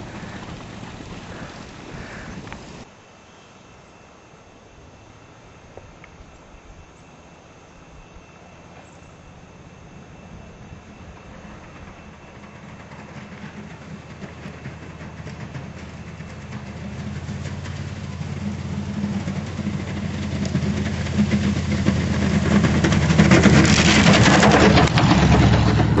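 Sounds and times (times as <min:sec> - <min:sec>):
engine running under load: 0:00.0 - 0:02.9, 0:07.0 - 0:26.0
rushing of plowed snow: 0:00.0 - 0:02.9, 0:09.6 - 0:26.0.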